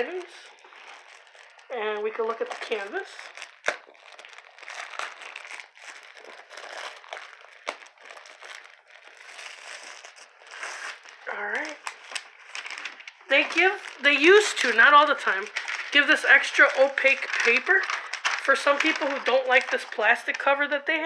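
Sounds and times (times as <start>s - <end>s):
plastic wrapping crinkling: 0.0s - 20.7s.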